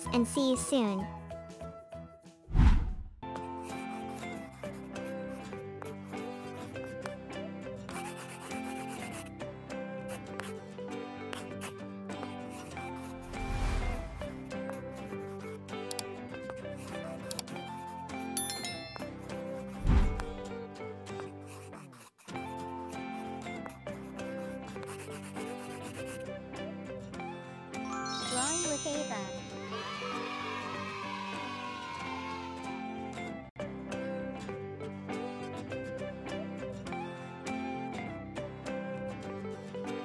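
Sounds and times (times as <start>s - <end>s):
background music: 0.0s - 40.0s
marker scratching on paper: 3.6s - 6.9s, 7.9s - 9.3s, 10.1s - 10.6s, 11.3s - 15.6s, 16.8s - 18.2s, 21.1s - 26.2s.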